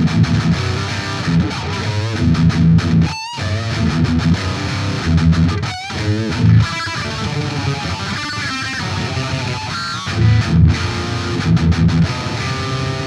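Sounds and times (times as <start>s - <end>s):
overdriven electric guitar: 0.0s - 13.0s.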